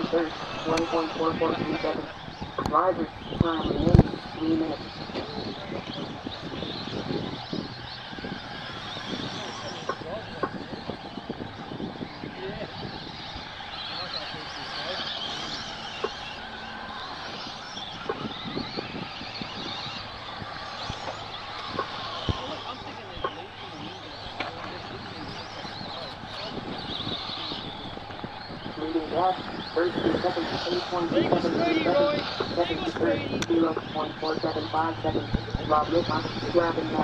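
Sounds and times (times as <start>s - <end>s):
electric motors whining: 0.0s - 37.0s.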